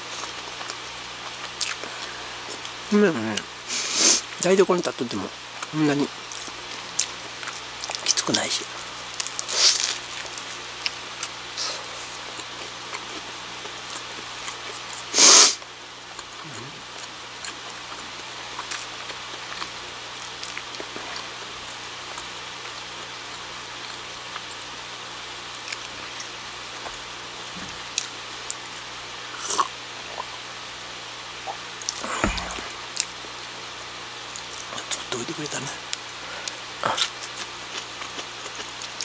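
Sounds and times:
room background hiss: 0.0 - 39.0
person chewing food: 0.1 - 2.8, 9.2 - 15.1, 16.1 - 21.5, 29.4 - 30.4, 31.5 - 33.2, 36.4 - 39.0.

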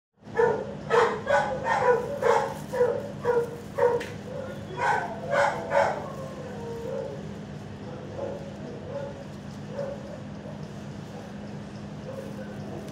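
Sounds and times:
dog barking: 0.3 - 7.2, 8.1 - 11.4, 12.0 - 12.9.

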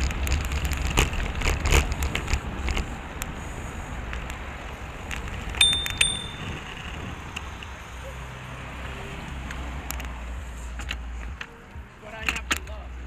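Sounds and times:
wind and road rumble: 0.0 - 13.0
bicycle bell dings: 5.6 - 7.0.

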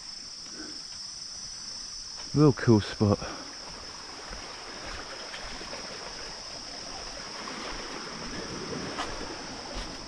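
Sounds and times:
insect chorus drone: 0.0 - 10.0.

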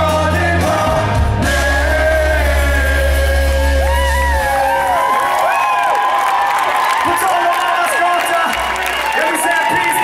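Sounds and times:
live band with brass chord: 0.0 - 4.8
crowd cheering and whooping: 3.2 - 10.0.

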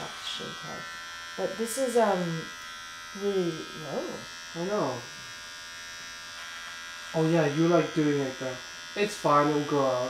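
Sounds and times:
electric hair clippers buzzing: 0.0 - 10.0.

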